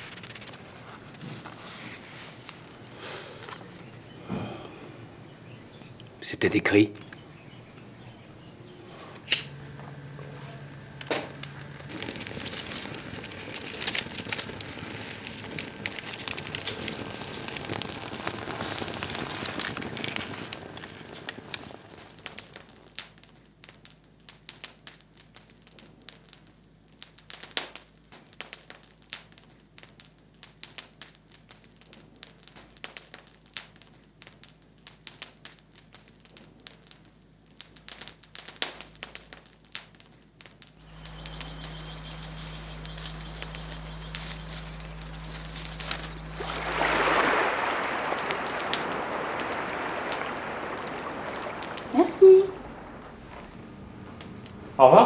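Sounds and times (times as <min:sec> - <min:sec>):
fire crackling and popping: 0:00.0 - 0:06.2, 0:10.2 - 0:54.8
low hum and rushing noise: 0:40.8 - 0:54.8.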